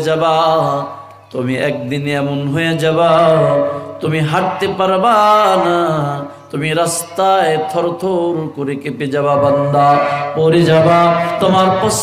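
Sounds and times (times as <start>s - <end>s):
man chanting a sermon: 0.0s - 12.0s.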